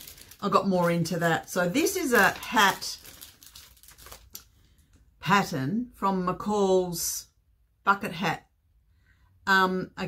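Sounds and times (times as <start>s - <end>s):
paper rustling and crinkling: 0.0s - 4.9s.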